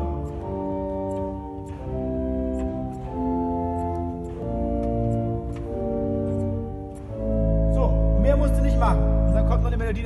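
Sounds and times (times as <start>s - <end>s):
man talking: 7.7s - 10.0s.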